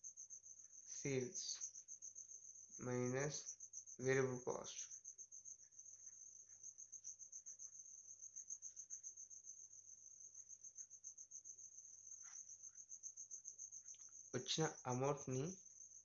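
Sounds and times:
insect trill: 0.0 - 16.0.

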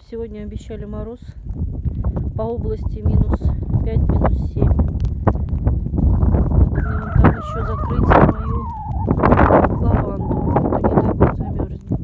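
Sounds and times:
wind buffeting microphone: 0.0 - 12.0
high wavering call: 6.8 - 10.6.

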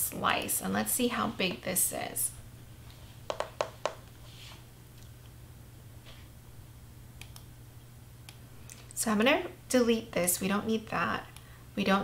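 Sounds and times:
faint low hum: 0.0 - 12.0
computer mouse clicks: 7.2 - 7.5.

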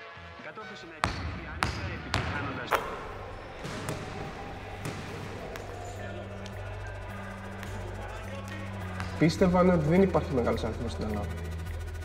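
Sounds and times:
basketball bouncing: 1.0 - 10.0.

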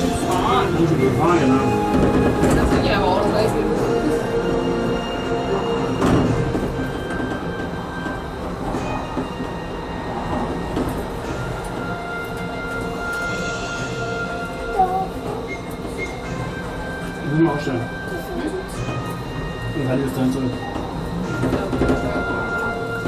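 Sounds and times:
monorail train rolling: 0.0 - 23.0.

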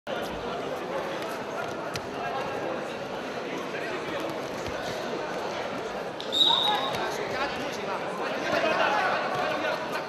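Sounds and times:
referee's whistle: 6.2 - 7.0.

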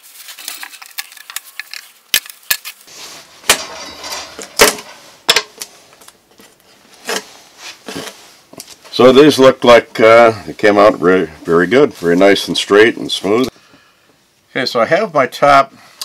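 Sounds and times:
wood scraping: 2.6 - 8.8.

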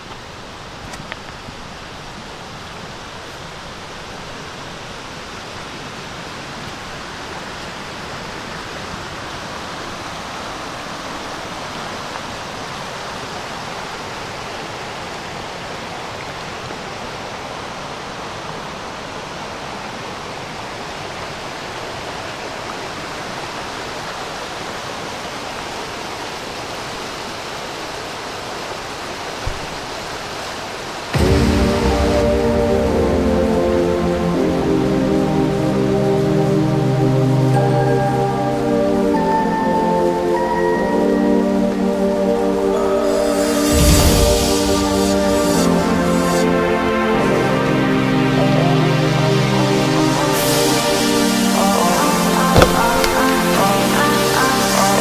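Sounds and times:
river water flowing over rocks: 0.0 - 32.2, 34.5 - 55.0
music: 31.2 - 55.0.

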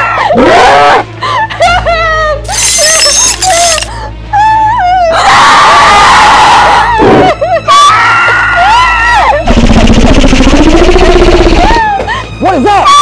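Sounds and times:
monster shriek: 2.5 - 3.8
woman screaming: 2.5 - 9.4.

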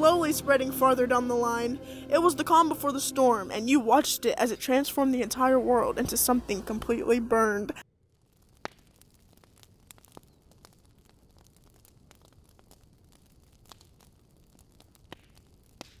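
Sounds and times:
wood fire crackling: 0.0 - 16.0
sharp pops from logs: 8.3 - 16.0.

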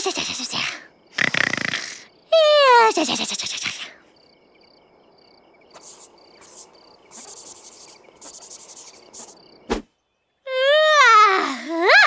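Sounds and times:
rasping insect calls: 0.0 - 10.6
crickets chirping: 0.0 - 12.0.

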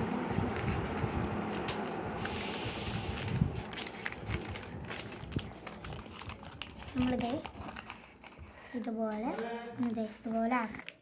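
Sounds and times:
paper rustling and crinkling: 0.1 - 11.0.

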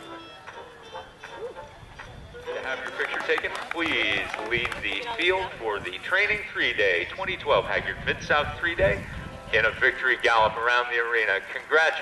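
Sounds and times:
music over public address: 0.0 - 12.0.

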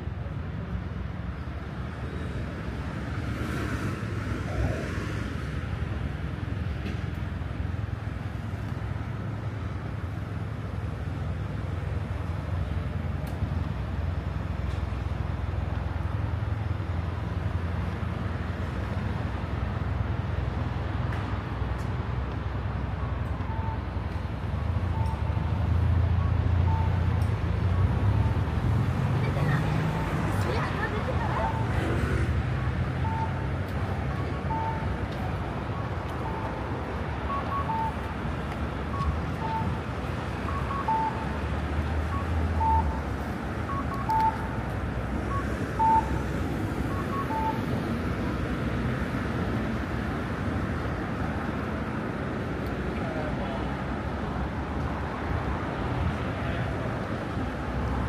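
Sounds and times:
road traffic rumble: 0.0 - 58.0
crossing signal beeps: 22.8 - 28.4, 29.3 - 31.8, 32.9 - 48.1
faint short beeps: 43.7 - 44.6, 45.3 - 46.2.

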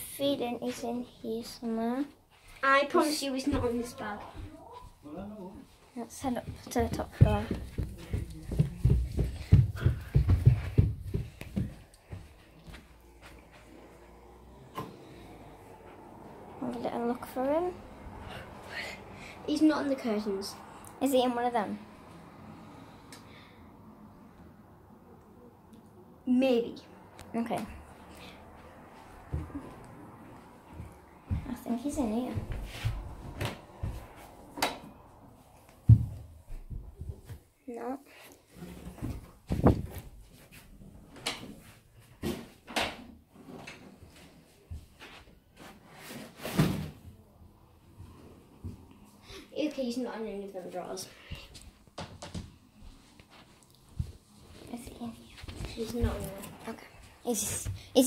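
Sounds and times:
soft footsteps on carpeted stairs: 1.9 - 18.8, 27.5 - 42.6, 43.4 - 45.8, 47.8 - 49.2, 50.6 - 58.0.

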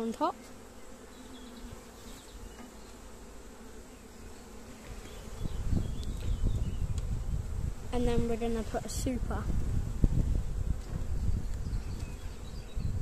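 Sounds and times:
bees buzzing: 0.0 - 13.0
low buffeting rumble on microphone: 5.1 - 13.0.

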